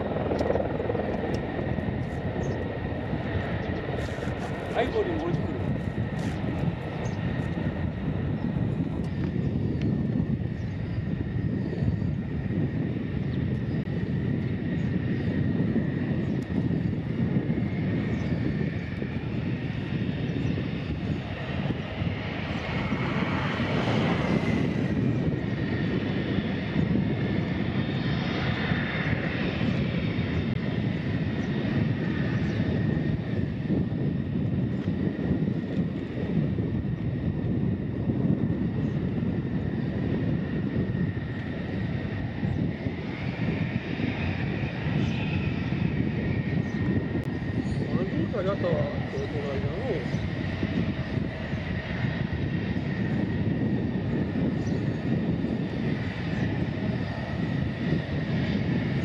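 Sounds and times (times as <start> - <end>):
jet engines rumbling and whining: 0.0 - 59.0.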